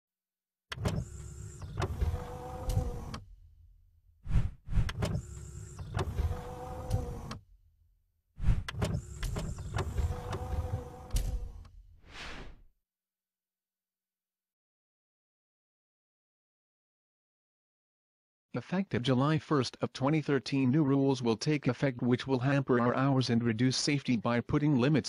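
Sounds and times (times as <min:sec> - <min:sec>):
motorised mechanical whirring: 0:00.7 - 0:03.4, 0:04.8 - 0:07.5, 0:08.6 - 0:11.7.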